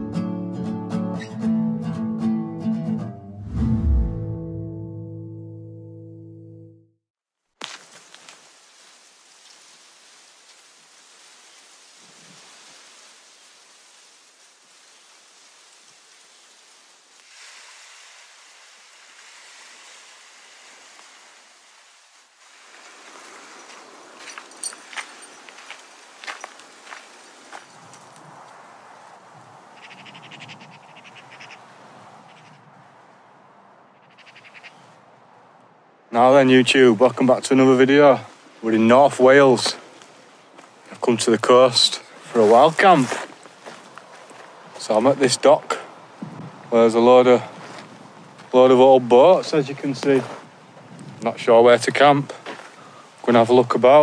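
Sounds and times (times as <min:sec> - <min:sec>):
steady seashore hiss: 0:08.4 - 0:24.4.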